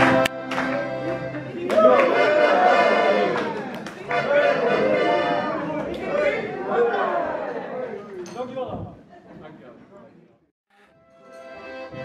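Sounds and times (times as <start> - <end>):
crowd chatter in large hall: 0.0 - 12.0.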